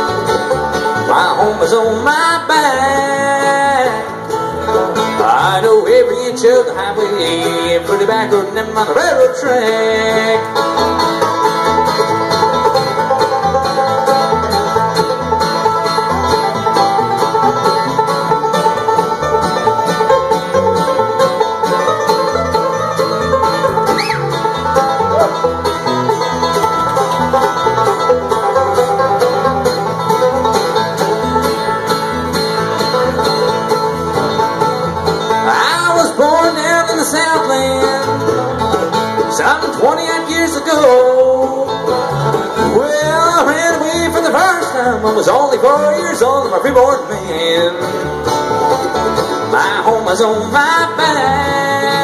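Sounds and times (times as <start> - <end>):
acoustic guitar: 0.0 - 52.0
banjo: 0.0 - 52.0
mandolin: 0.0 - 52.0
upright bass: 0.0 - 52.0.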